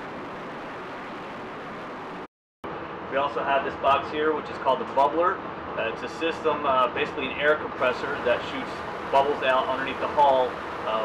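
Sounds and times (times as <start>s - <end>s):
diesel generators running: 0.0s - 11.0s.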